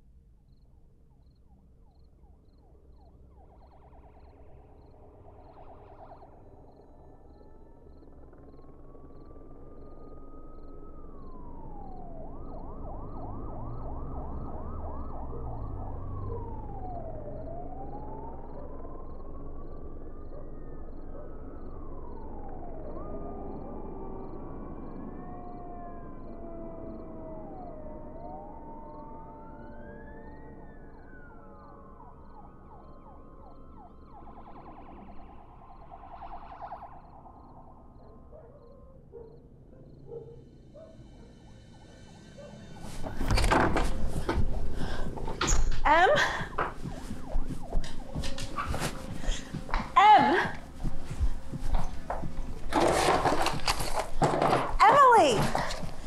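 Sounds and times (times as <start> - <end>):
emergency sirens wailing: 9.8 - 38.4, 40.8 - 56.0.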